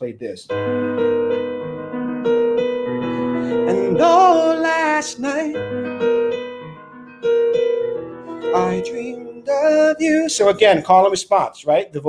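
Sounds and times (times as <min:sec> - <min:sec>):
piano notes ringing: 0:00.5 - 0:11.1.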